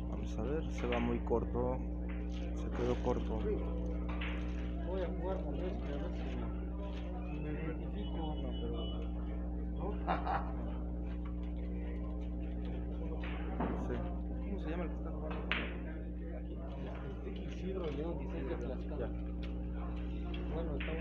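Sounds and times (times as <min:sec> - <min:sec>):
steady hum: 0:00.0 - 0:21.0.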